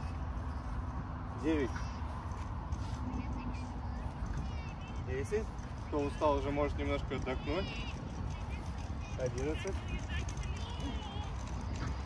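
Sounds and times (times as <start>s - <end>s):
distant traffic rumble: 0.0s - 12.0s
wind: 0.0s - 12.0s.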